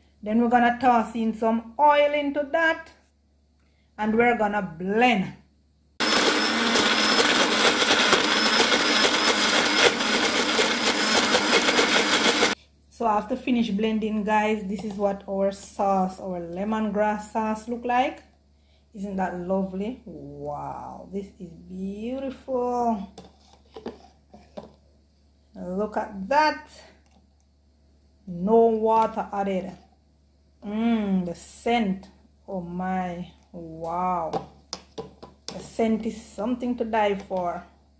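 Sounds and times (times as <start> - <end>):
blender running: 6.0 - 12.6
metal spoon scraping plastic cup: 23.1 - 24.7.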